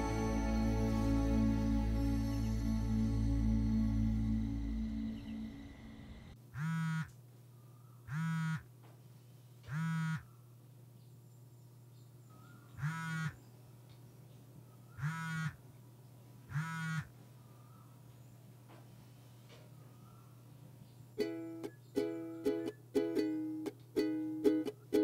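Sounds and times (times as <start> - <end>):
background music: 0.0 - 6.4.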